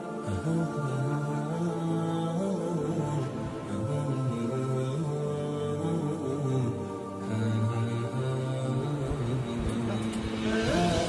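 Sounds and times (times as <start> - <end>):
humming vocal music: 0.0 - 11.0.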